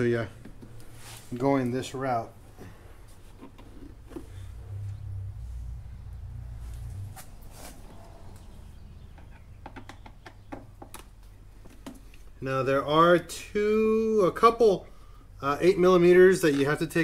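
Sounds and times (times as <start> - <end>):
low rumble: 4.3 - 9.2.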